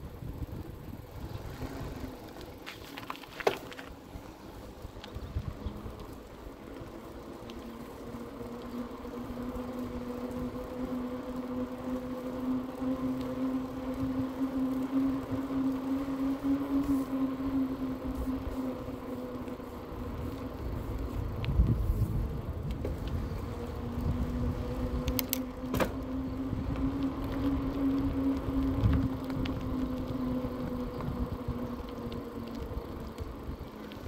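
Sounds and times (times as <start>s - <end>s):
wind rumble on microphone: 0.0s - 6.9s, 8.2s - 34.0s
electric bike motor humming: 0.0s - 34.0s.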